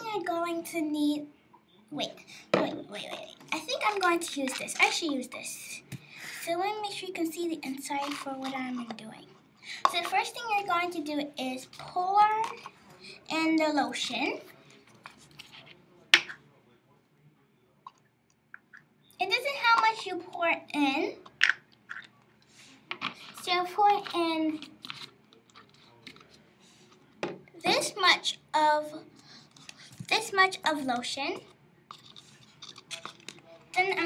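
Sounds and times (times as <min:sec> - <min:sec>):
child's voice: 0:00.0 - 0:01.3, 0:01.9 - 0:14.5, 0:19.2 - 0:21.2, 0:23.4 - 0:24.7, 0:27.6 - 0:29.1, 0:30.1 - 0:31.5, 0:33.8 - 0:34.0.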